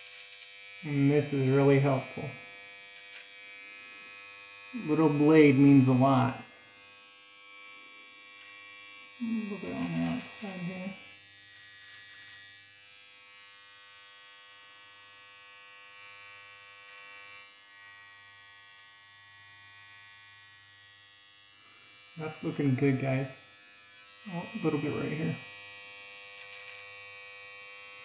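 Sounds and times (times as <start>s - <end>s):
electric trimmer humming: 0.0s - 28.0s.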